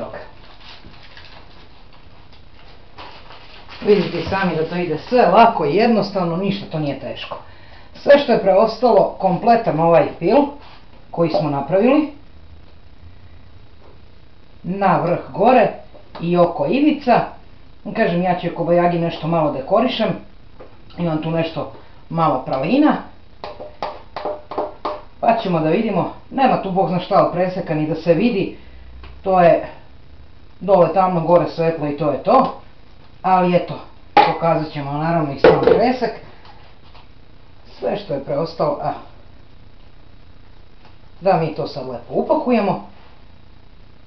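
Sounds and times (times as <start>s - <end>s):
room noise: 0.0s - 44.0s
baking paper rustling: 0.2s - 5.4s
spatula knocking on metal bowl: 23.4s - 25.1s.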